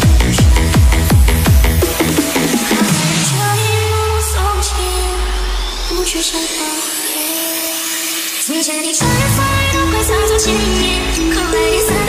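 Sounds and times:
rushing noise sweep: 0:00.0 - 0:09.0.

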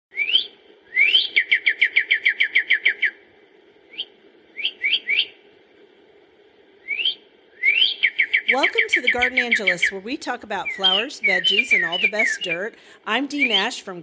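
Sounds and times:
songbird whistling song: 0:00.1 - 0:03.2, 0:03.9 - 0:05.4, 0:06.8 - 0:13.9.

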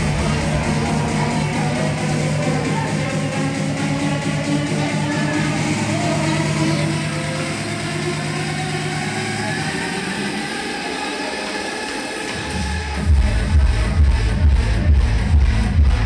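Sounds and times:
electronic dance music: 0:00.0 - 0:16.0
pounding kick and bass: 0:00.0 - 0:16.0.

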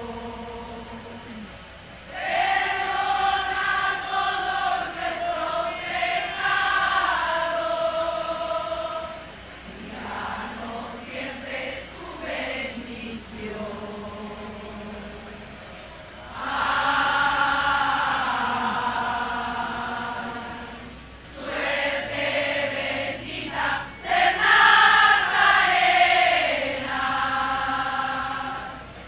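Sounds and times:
choir singing a hymn: 0:00.0 - 0:29.0.

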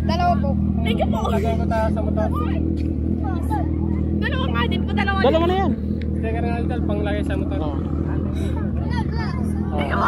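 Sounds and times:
children talking: 0:00.0 - 0:05.8, 0:06.4 - 0:10.0
motorcycle engine idling: 0:00.0 - 0:10.0.

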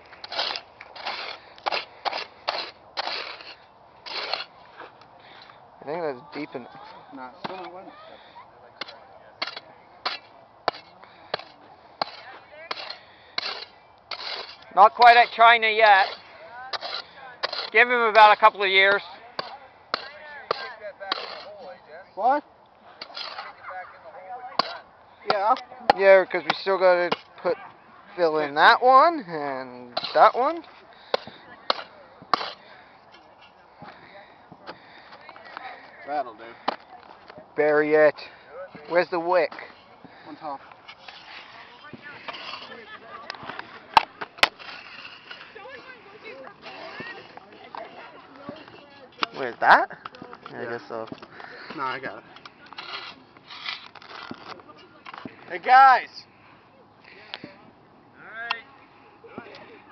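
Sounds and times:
shovel striking and scraping dirt: 0:00.0 - 0:05.0, 0:08.8 - 0:22.4, 0:23.0 - 0:23.6, 0:24.5 - 0:27.4, 0:29.5 - 0:32.8, 0:38.2 - 0:51.1
digging tool chopping hard dirt: 0:08.8 - 0:18.4, 0:19.4 - 0:21.6, 0:24.6 - 0:27.3.

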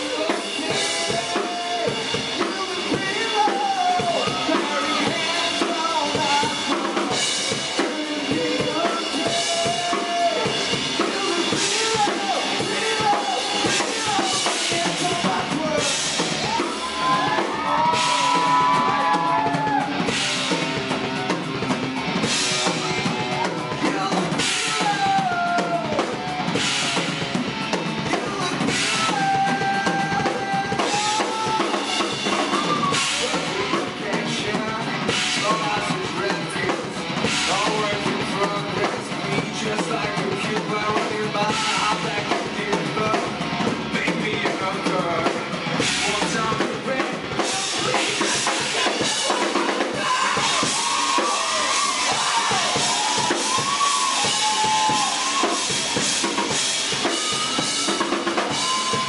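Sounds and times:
distorted electric guitar lead: 0:00.0 - 0:59.0
drum kit: 0:00.0 - 0:59.0.

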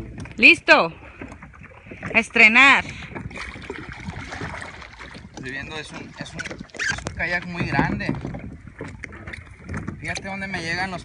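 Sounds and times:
water and paddle noise: 0:00.0 - 0:11.0.

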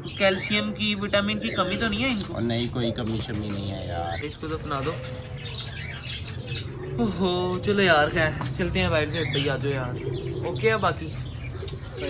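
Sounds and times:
pigeons calling: 0:00.0 - 0:12.0.

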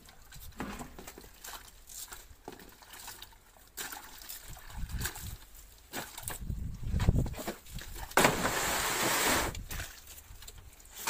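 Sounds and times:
plastic crate rustling and sliding: 0:08.2 - 0:09.7.

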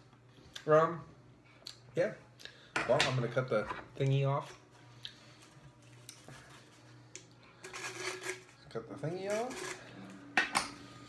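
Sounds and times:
knife scraping bottle foil: 0:07.6 - 0:08.6.

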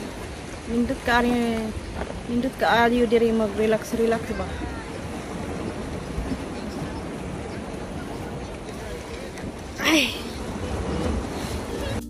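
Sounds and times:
sea surf: 0:00.0 - 0:12.0
wind noise on microphone: 0:00.0 - 0:12.0.

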